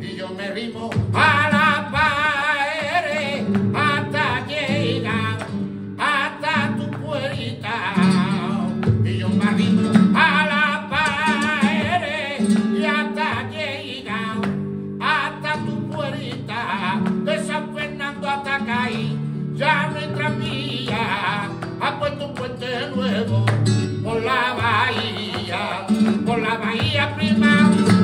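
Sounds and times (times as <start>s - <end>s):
flamenco guitar: 0.0s - 28.0s
man singing flamenco: 0.0s - 28.0s.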